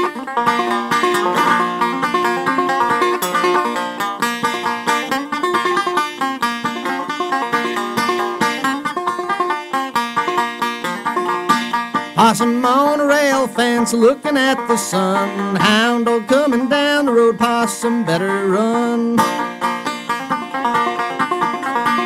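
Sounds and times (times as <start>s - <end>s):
banjo picking fast melody: 0.0s - 22.0s
guitar accompaniment: 0.0s - 22.0s.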